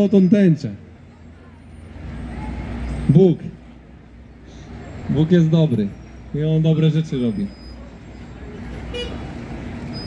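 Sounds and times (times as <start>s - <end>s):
bus engine rumble: 0.0s - 10.0s
street traffic: 0.0s - 10.0s.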